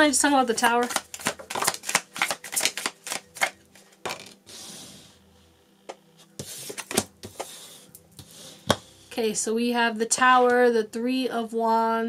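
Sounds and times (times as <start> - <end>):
cards being shuffled: 0.5 - 4.4, 6.4 - 7.6
card sliding on table: 4.2 - 5.2, 6.4 - 8.9.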